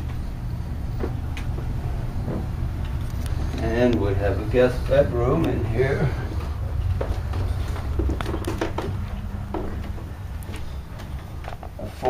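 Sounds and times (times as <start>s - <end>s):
steady low rumble: 0.0s - 12.0s
man speaking: 3.6s - 6.3s.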